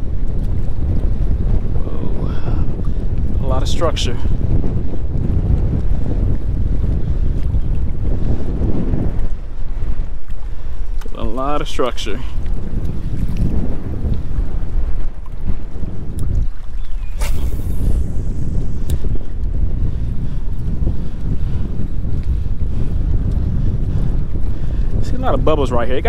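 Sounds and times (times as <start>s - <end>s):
choppy water: 0.0s - 26.0s
strong wind buffeting microphone: 0.0s - 26.0s.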